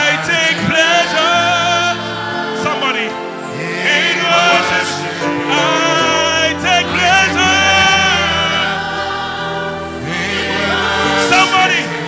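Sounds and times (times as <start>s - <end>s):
choir singing gospel song: 0.0s - 12.0s
instrumental backing: 1.5s - 12.0s.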